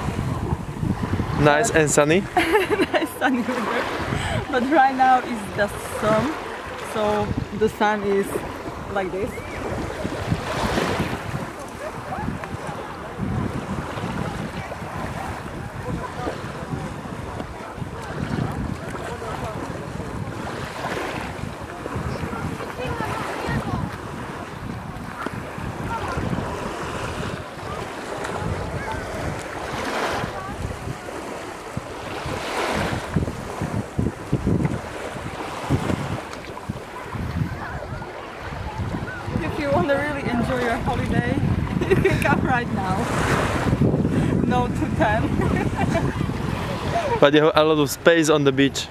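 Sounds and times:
small waves washing onto beach: 0.0s - 48.9s
wind buffeting microphone: 0.0s - 48.9s.

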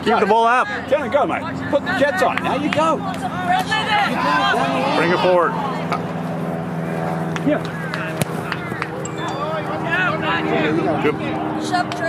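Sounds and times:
people shouting: 3.3s - 5.6s.

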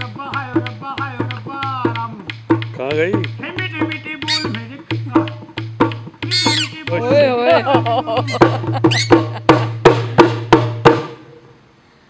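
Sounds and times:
shrill whistle-like puppet voice: 4.2s - 4.6s, 6.3s - 6.9s, 8.3s - 9.2s.

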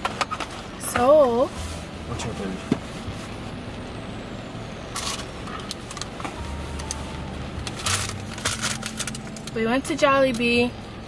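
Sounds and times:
car cabin hum and hiss: 0.0s - 11.0s
paper bag rustling: 7.7s - 9.6s.

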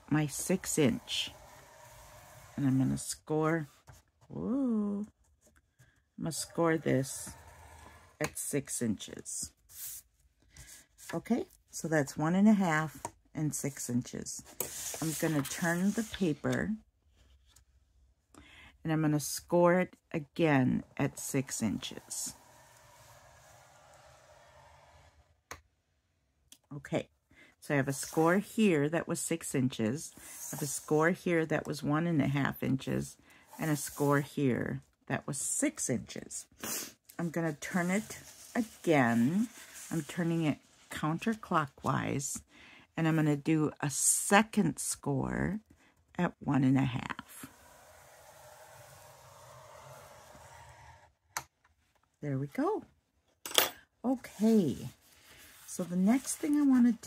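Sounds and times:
stylus scratching paper: 0.0s - 4.0s, 6.3s - 8.3s, 20.4s - 25.2s, 37.2s - 42.0s, 47.0s - 51.1s.

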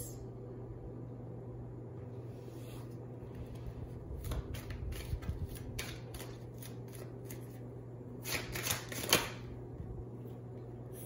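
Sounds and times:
cards being shuffled: 4.2s - 7.6s, 8.2s - 9.4s.

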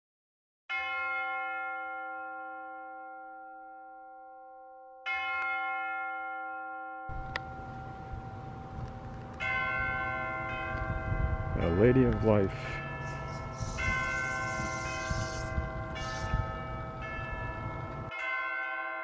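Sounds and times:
church bell ringing: 0.7s - 19.0s.

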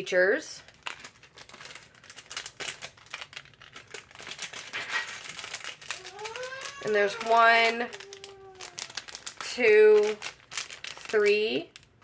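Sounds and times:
plastic bags crinkling: 0.5s - 12.0s.

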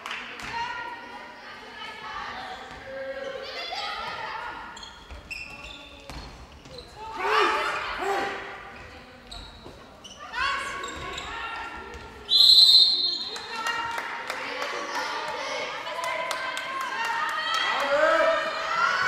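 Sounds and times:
ball bouncing on court floor: 5.0s - 6.9s, 10.8s - 12.2s
players shouting: 7.0s - 8.5s.

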